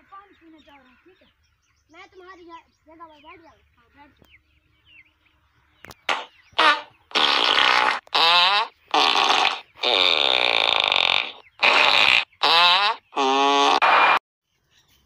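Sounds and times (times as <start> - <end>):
loud fart noises: 6.1 - 14.2.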